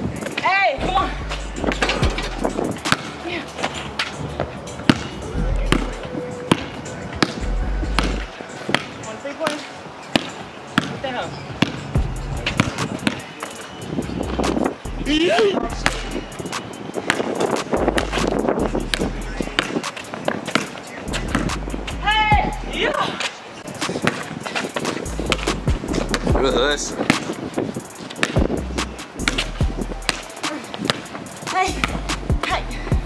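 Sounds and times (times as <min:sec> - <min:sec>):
background music with bass beat: 0:00.0 - 0:09.1, 0:11.7 - 0:23.0, 0:23.6 - 0:33.0
basketball bouncing on hard court: 0:04.9 - 0:05.9, 0:24.0 - 0:26.4, 0:28.1 - 0:28.6, 0:29.2 - 0:31.1, 0:31.7 - 0:32.6.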